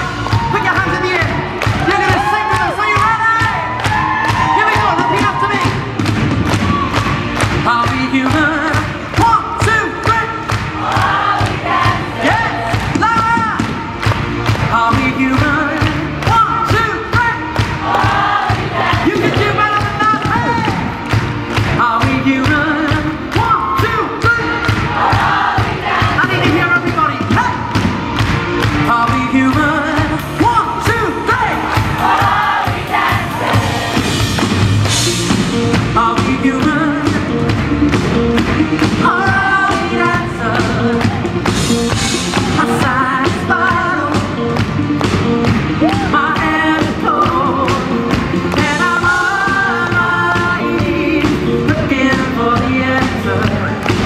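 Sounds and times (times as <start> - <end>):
audience crowd noise: 0.0 - 54.0
drum beat: 0.0 - 54.0
live pop music: 0.0 - 54.0
male lead vocal: 7.5 - 13.6, 14.6 - 20.9, 21.6 - 27.7, 28.8 - 34.0, 35.7 - 37.6, 38.4 - 41.5, 42.4 - 44.6, 45.7 - 54.0.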